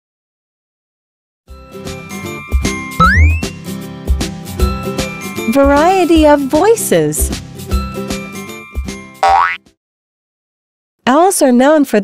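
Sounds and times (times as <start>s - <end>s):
tinkling music jingle: 1.6s - 3.8s
bright note gliding upward: 3.0s - 3.6s.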